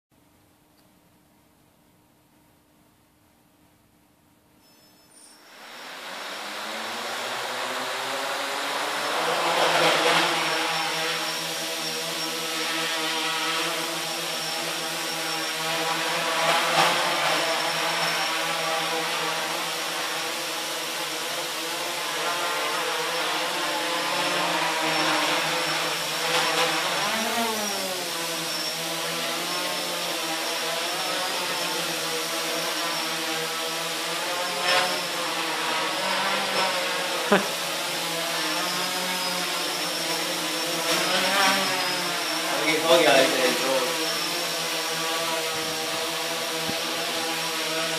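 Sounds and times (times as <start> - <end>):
quadcopter motors buzzing: 4.6 - 47.9.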